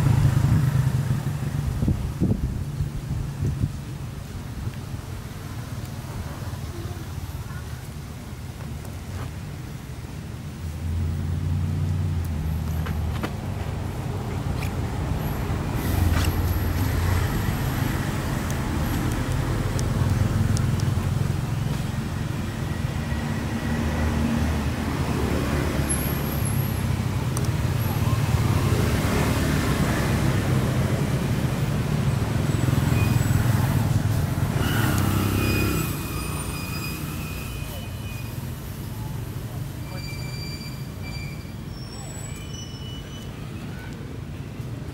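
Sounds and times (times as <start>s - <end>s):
vehicle engine rumbling: 0.0s - 44.9s.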